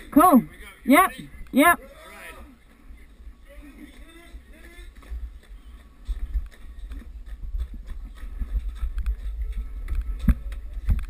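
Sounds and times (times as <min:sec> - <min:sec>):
sled runners rumbling on ice: 0:03.6 - 0:11.0.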